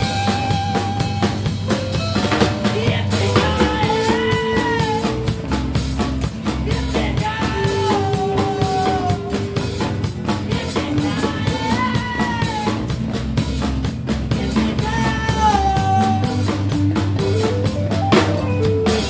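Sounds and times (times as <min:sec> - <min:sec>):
drum kit steady beat: 0:00.0 - 0:19.0
guitar: 0:00.0 - 0:19.0.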